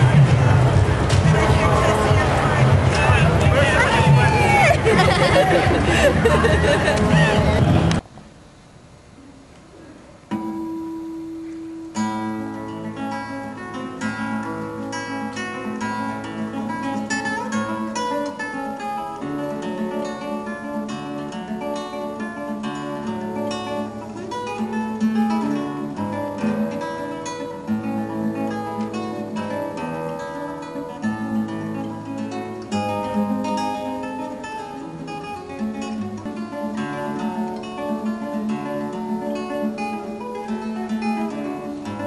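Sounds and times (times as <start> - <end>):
classical guitar piece: 0.0 - 8.0, 9.3 - 42.0.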